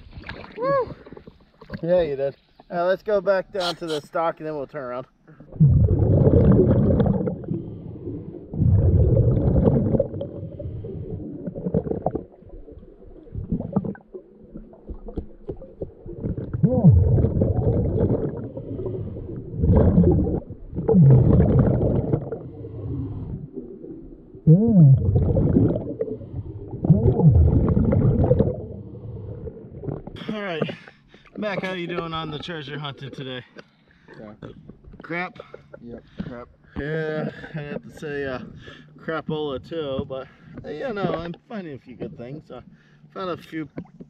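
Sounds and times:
bubbles gurgling underwater: 0:05.5 - 0:30.2
diver breathing through regulator: 0:17.9 - 0:20.4, 0:21.8 - 0:23.6.

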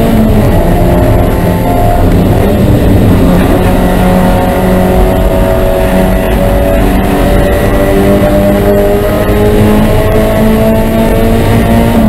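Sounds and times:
race car engine at high revs: 0:00.0 - 0:12.0
road and wind noise: 0:00.0 - 0:12.0.

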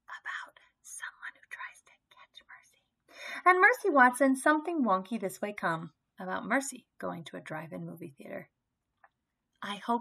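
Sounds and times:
woman whispering: 0:00.0 - 0:02.8.

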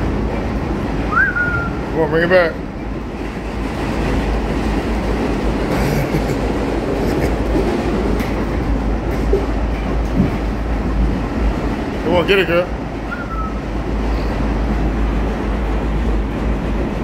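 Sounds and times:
subway train rumbling on rails: 0:00.0 - 0:17.0.

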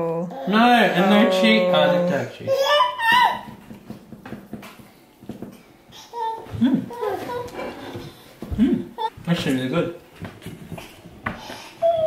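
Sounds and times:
indistinct voices: 0:00.0 - 0:02.6.

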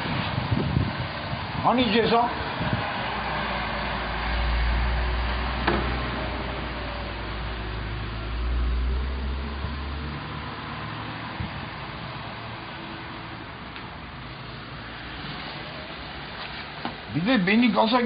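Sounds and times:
city street traffic rumble: 0:00.0 - 0:18.0.

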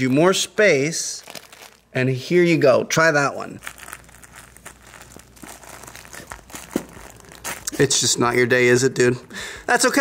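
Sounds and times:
faint crinkling rustles: 0:01.2 - 0:01.9, 0:03.6 - 0:08.4.

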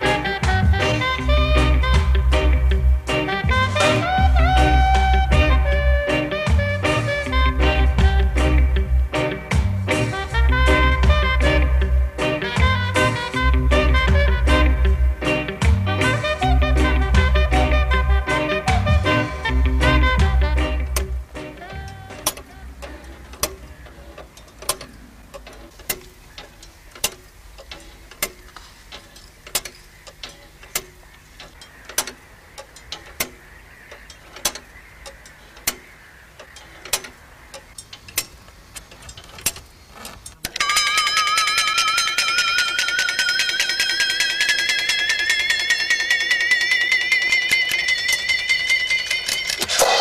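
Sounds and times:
clock ticking: 0:00.0 - 0:50.0
faint clicks: 0:21.0 - 0:40.6.

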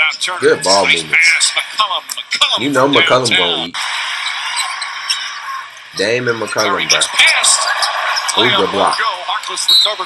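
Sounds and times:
play-by-play commentary: 0:00.0 - 0:03.8, 0:05.9 - 0:10.0.

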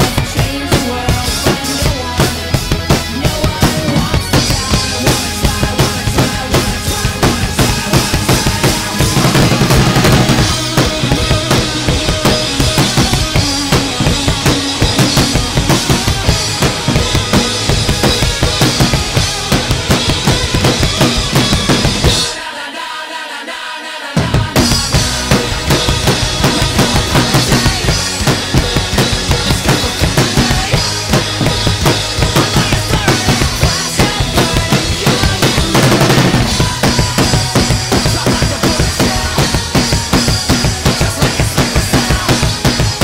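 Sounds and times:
drum kit played hard: 0:00.0 - 0:22.5, 0:24.2 - 0:43.0
recorded rock song: 0:00.0 - 0:43.0.

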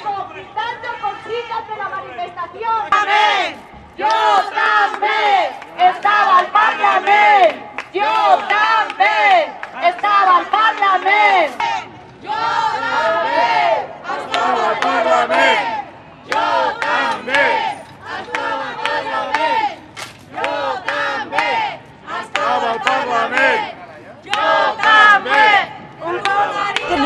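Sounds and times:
protesters shouting slogans: 0:00.0 - 0:27.0.

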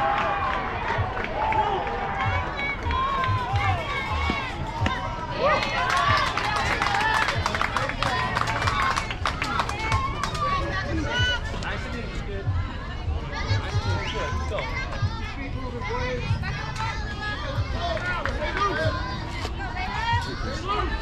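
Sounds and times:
children calling and chanting: 0:00.0 - 0:21.0.

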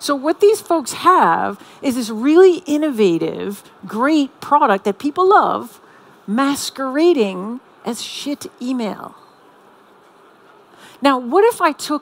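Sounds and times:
woman speaking: 0:00.0 - 0:09.2, 0:11.0 - 0:12.0
room hum and hiss: 0:00.0 - 0:12.0.

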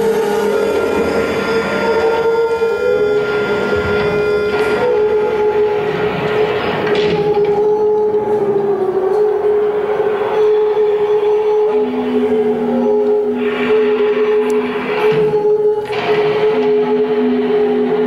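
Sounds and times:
accordion droning note: 0:00.0 - 0:18.0
bass clarinet droning note: 0:00.0 - 0:18.0.

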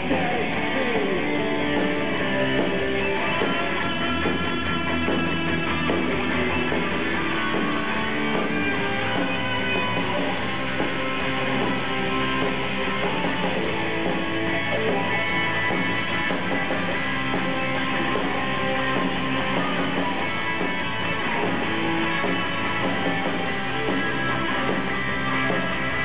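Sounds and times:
drums: 0:00.0 - 0:26.0
electric guitar: 0:00.0 - 0:26.0.

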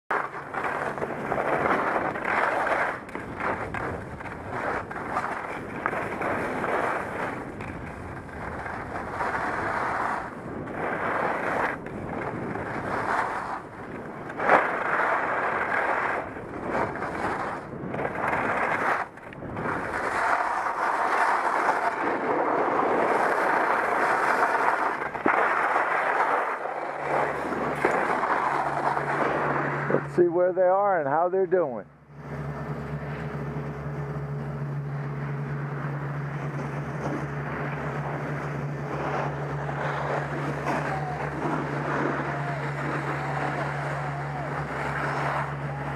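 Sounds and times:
skis scraping over snow: 0:00.1 - 0:31.8, 0:32.8 - 0:45.9.

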